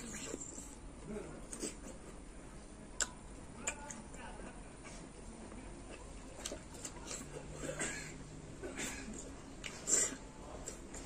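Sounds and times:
person chewing crisp fruit: 0.0 - 2.3, 2.9 - 4.2, 5.8 - 7.8, 9.1 - 11.0.

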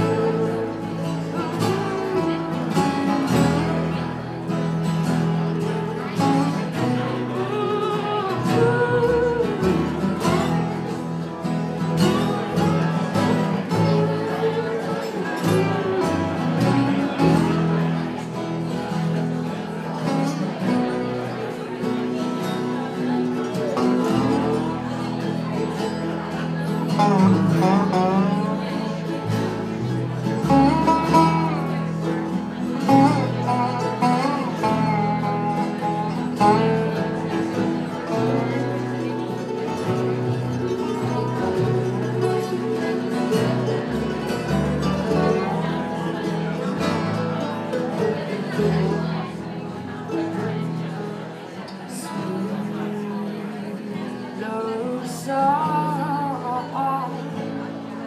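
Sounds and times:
acoustic string band playing: 0.0 - 58.0
sliding lead guitar melody: 0.0 - 58.0.

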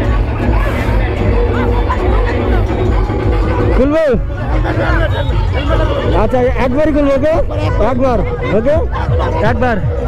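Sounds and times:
crowd babble: 0.0 - 10.0
people talking and calling out: 0.0 - 10.0.

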